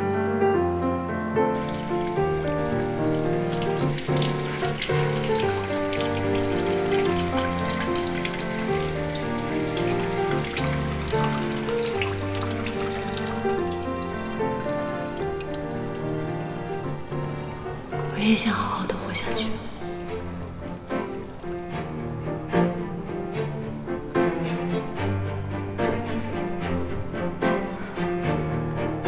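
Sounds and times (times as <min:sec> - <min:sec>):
soft background music: 0:00.0 - 0:29.0
water running from tap: 0:01.6 - 0:22.0.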